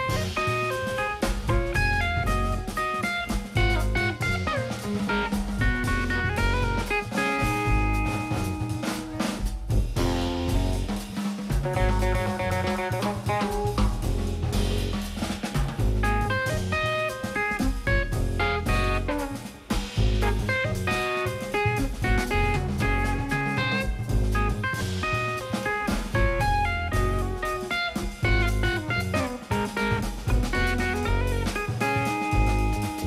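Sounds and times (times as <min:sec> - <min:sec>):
drum kit with cymbals: 0:00.0 - 0:33.0
electric guitar melody: 0:00.0 - 0:33.0.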